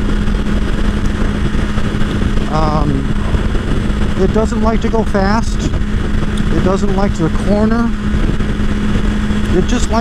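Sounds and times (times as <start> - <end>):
motorcycle engine cruising: 0.0 - 10.0
road noise: 0.0 - 10.0
wind rushing: 0.0 - 10.0.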